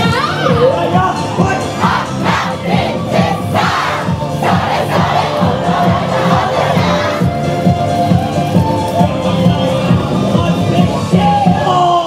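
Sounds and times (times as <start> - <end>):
dance music with steady beat: 0.0 - 11.7.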